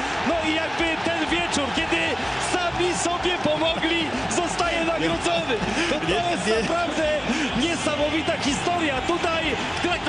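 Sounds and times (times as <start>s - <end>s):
football commentator talking: 0.0s - 10.0s
stadium crowd noise: 0.0s - 10.0s.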